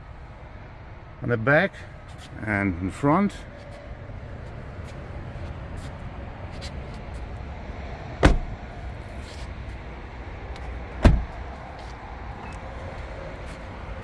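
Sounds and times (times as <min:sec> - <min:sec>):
car doors slamming: 0:08.2 - 0:08.6, 0:10.9 - 0:11.5.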